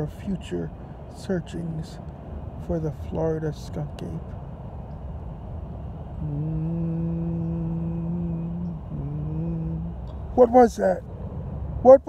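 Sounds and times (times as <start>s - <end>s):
person humming a low note: 6.2s - 10.1s.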